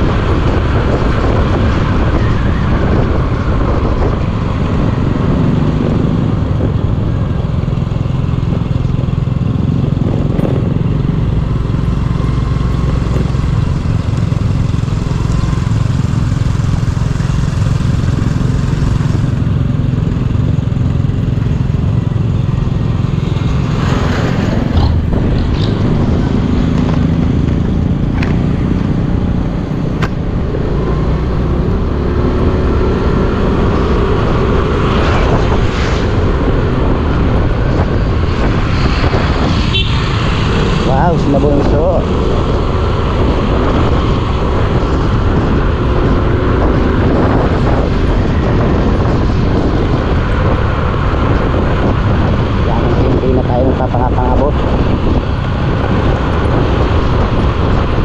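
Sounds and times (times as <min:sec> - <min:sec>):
road noise: 0:00.0 - 0:58.0
vehicles passing: 0:00.0 - 0:58.0.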